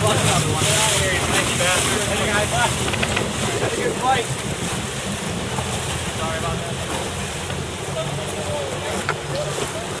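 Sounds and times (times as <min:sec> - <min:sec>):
wind buffeting microphone: 0:00.0 - 0:07.8
rushing water: 0:00.0 - 0:10.0.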